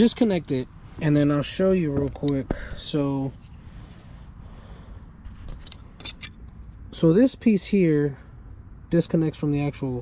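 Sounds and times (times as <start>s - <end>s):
light clicks and scrapes: 5.2s - 6.8s
plastic part handling noise: 5.3s - 6.8s.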